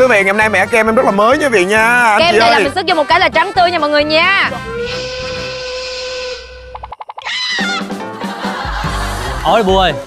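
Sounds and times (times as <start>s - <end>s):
steam whistle: 4.6s - 6.8s.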